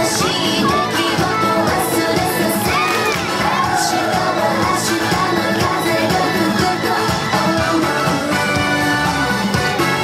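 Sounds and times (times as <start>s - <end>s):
group shouting and cheering: 0.0s - 7.0s
upbeat dance music: 0.0s - 10.0s.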